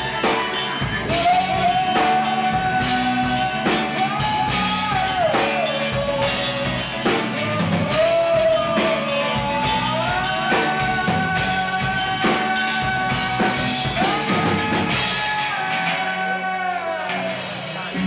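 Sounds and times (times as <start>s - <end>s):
bass and guitars: 0.0s - 18.0s
drum kit beat: 0.0s - 18.0s.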